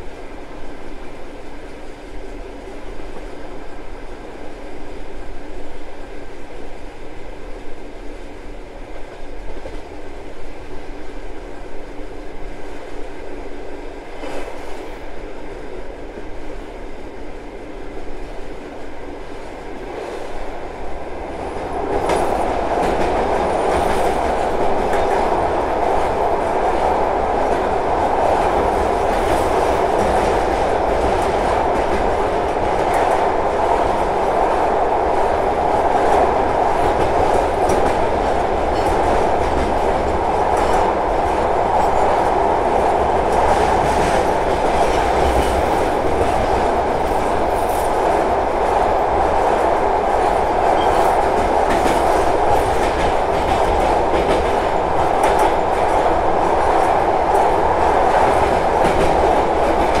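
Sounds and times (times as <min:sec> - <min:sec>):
train wheels rumbling on rail: 0:00.0 - 1:00.0.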